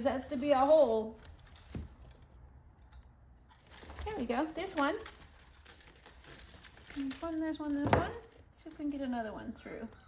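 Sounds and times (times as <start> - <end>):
wicker crackling: 0.0 - 10.0.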